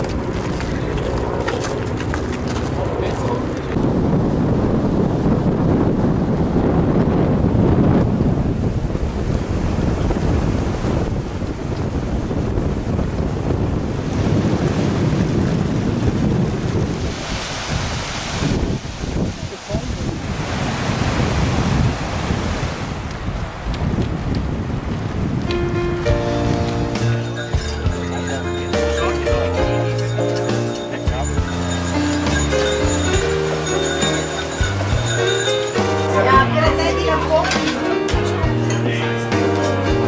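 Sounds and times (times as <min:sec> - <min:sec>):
wind buffeting microphone: 0:00.0 - 0:28.7
rushing meltwater: 0:08.3 - 0:25.4, 0:26.4 - 0:40.0.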